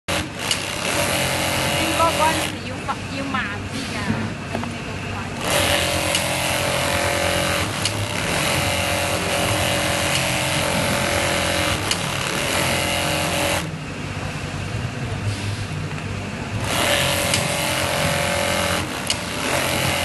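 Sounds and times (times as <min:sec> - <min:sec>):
low motor hum: 0:00.7 - 0:20.0.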